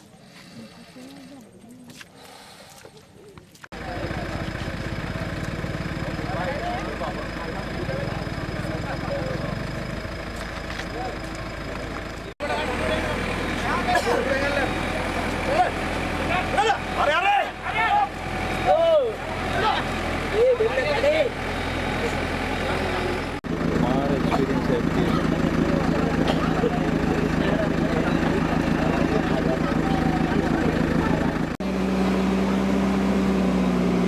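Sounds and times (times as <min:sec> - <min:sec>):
men calling out and talking: 0:00.1 - 0:31.6
backhoe engine idling: 0:03.7 - 0:31.9.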